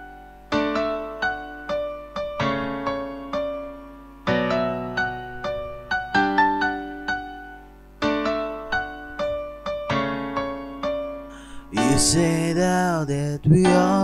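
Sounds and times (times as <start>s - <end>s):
piano chords and melody: 0.0s - 14.0s.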